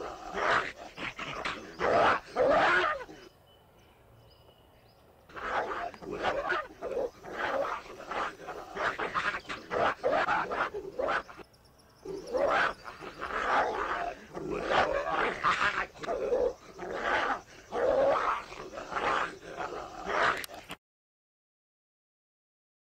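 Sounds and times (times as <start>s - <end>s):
dogs growling and snarling: 0.0s - 3.3s, 5.3s - 11.4s, 12.0s - 20.8s.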